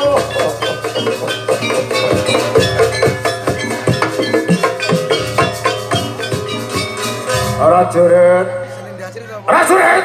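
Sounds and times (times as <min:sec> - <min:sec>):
drums struck in quick rhythm: 0:00.0 - 0:08.1
ringing metal keyed instruments: 0:00.0 - 0:08.8.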